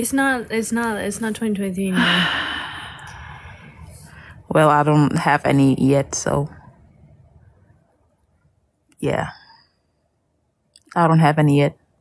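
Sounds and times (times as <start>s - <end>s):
person exhaling breathily: 2.0s - 4.3s.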